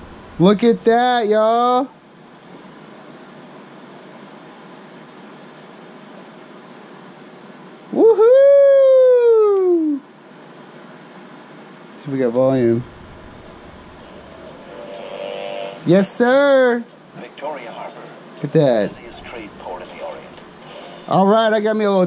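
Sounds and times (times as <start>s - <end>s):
steady low tape hiss: 0.0s - 22.0s
long high cry: 7.9s - 10.1s.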